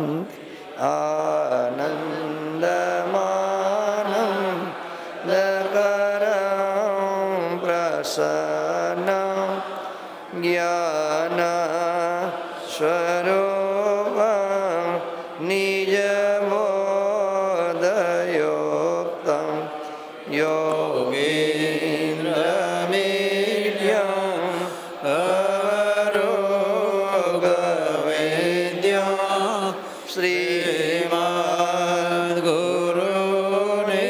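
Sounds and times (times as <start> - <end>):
person chanting devotionally: 0.0 - 34.0.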